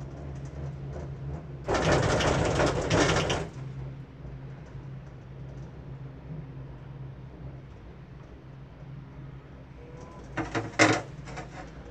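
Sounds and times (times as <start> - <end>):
rattling rumble over rollers: 0.0 - 6.1, 9.9 - 11.9
gondola cabin hum: 0.0 - 11.9.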